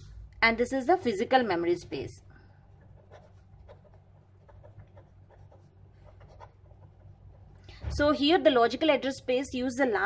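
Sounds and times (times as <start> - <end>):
steady low hum: 0.0 - 9.7
pen scratching on paper: 2.7 - 7.6.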